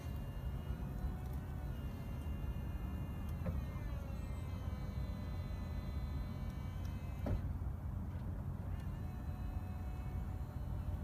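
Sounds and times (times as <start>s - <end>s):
electric pump whine: 0.0s - 11.0s.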